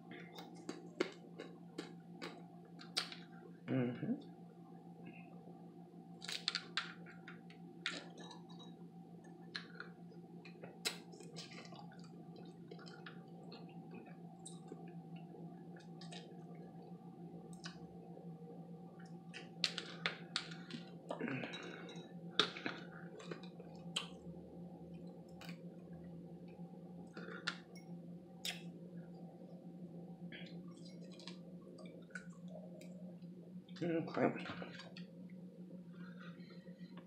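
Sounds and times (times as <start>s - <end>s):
steady low hum: 0.0s - 37.0s
chewing and mouth sounds: 0.1s - 3.3s, 9.4s - 17.9s, 19.0s - 24.3s, 30.4s - 33.1s.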